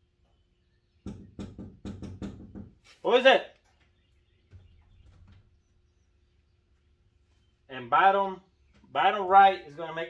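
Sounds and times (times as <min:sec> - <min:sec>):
knocking on a door: 0:01.0 - 0:02.8.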